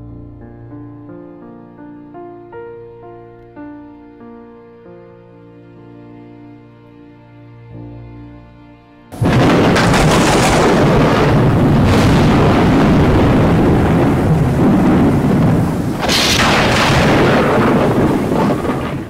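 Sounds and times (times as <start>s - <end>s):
heavy rumbling thunder: 9.2s - 19.0s
sharp thunder cracks: 9.2s - 19.0s.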